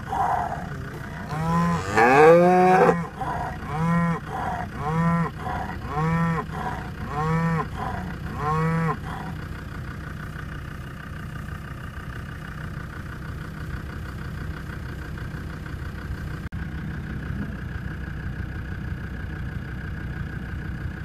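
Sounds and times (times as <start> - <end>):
cattle mooing: 0.0 - 9.4
vehicle engine idling: 0.0 - 21.0.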